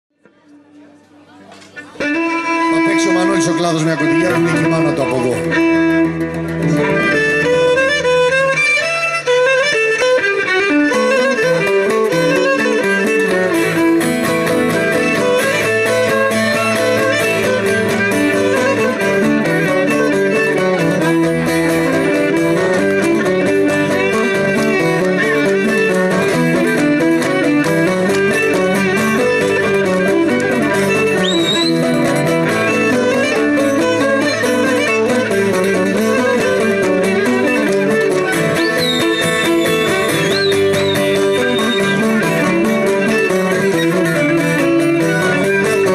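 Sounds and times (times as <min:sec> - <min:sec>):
plucked lute accompaniment: 0:00.3 - 0:45.9
bowed lyra melody: 0:02.0 - 0:45.9.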